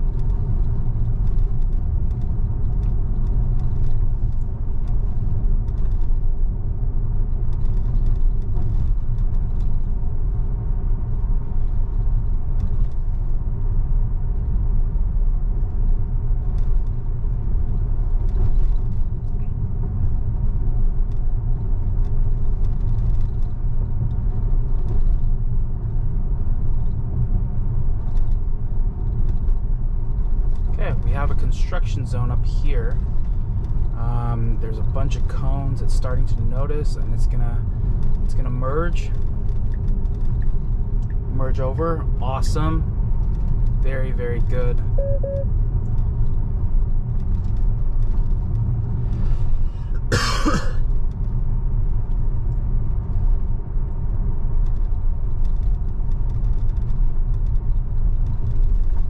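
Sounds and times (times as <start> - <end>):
road rumble and tyre noise: 0.0 - 59.0.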